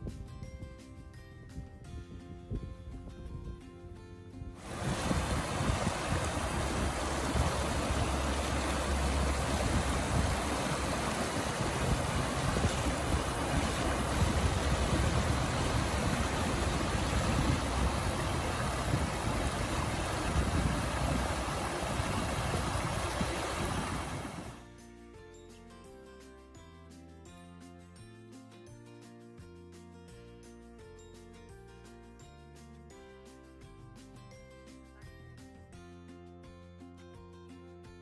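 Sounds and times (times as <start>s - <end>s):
creek rushing over rocks: 4.6s - 24.6s.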